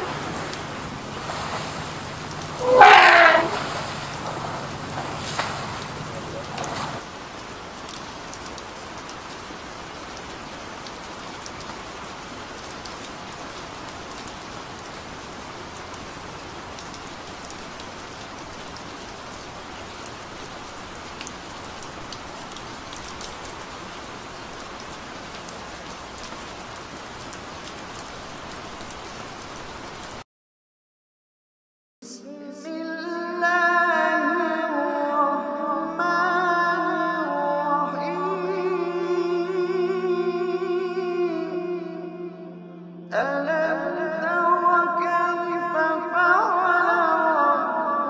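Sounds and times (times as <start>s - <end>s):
rain-like hiss with crackles: 0.0s - 30.2s.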